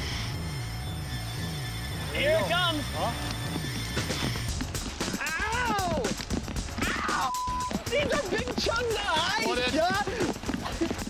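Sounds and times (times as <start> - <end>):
person yelping: 5.2 - 6.1.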